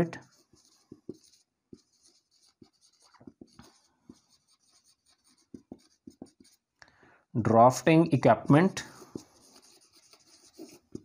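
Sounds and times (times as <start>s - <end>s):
marker pen writing on whiteboard: 0.0s - 6.8s, 8.4s - 11.0s.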